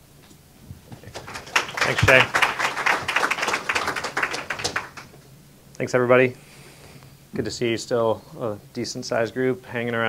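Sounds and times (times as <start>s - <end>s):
audience applauding: 1.0s - 5.2s.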